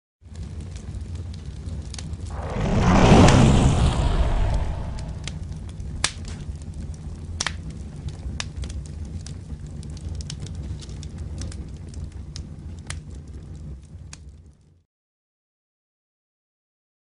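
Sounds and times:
rush of flame: 2.2s - 7.1s
sharp crackles: 2.3s - 7.1s
steady low rumble: 2.3s - 7.1s.

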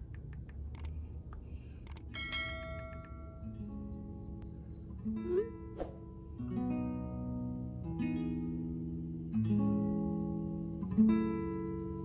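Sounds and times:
mouse clicks: 0.1s - 1.0s.

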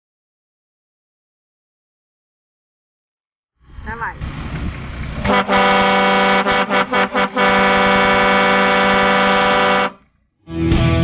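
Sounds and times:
vehicle horn honking: 5.3s - 10.1s.

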